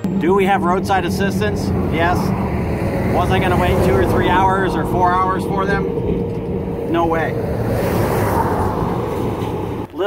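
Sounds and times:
traffic roar: 0.0s - 10.0s.

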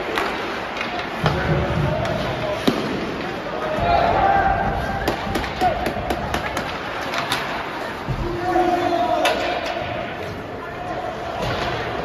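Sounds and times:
hockey sticks clacking on puck: 0.0s - 3.7s, 4.8s - 8.3s, 9.2s - 10.2s
skates scraping and rink hum: 0.0s - 12.0s.

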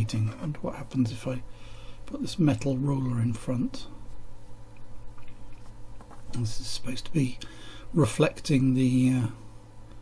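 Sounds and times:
faint background hiss: 0.0s - 10.0s
low electrical hum: 0.0s - 10.0s.

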